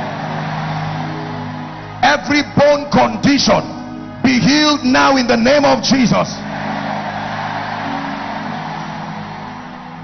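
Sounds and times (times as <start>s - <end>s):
congregation praying: 0.0s - 10.0s.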